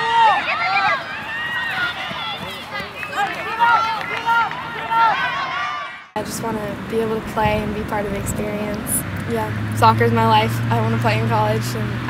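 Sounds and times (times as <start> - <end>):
people shouting and calling: 0.0 - 6.2.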